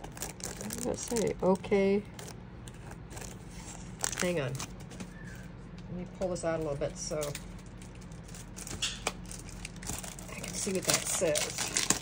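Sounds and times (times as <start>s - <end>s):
plastic packaging rustling: 0.0s - 5.7s, 6.6s - 12.0s.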